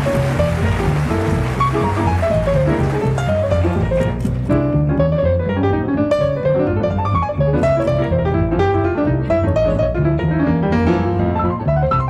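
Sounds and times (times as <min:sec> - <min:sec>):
double bass walking line: 0:00.0 - 0:12.0
grand piano melody: 0:00.0 - 0:12.0.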